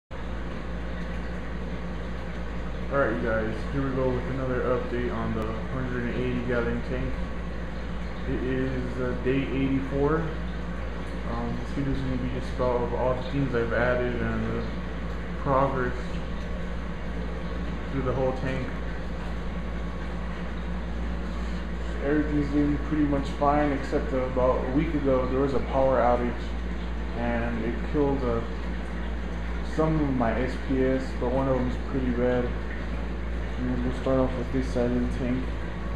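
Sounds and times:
aquarium pumps humming and hissing: 0:00.1 - 0:35.9.

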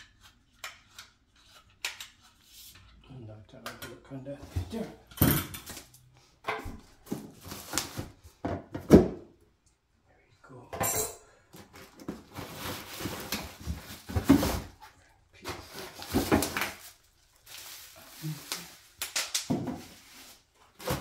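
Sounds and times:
plastic packaging rustling: 0:07.0 - 0:08.2, 0:11.7 - 0:14.8, 0:15.4 - 0:21.0.

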